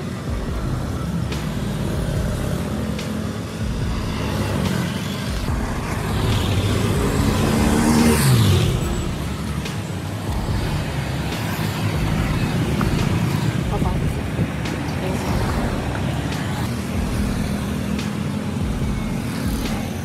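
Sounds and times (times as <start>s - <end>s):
street traffic rumbling: 0.0s - 20.0s
vehicle engine passing close: 0.0s - 20.0s.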